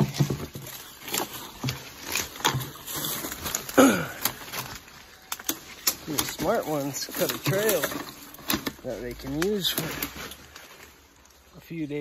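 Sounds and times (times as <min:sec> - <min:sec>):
twigs cracking underfoot: 0:00.0 - 0:11.7.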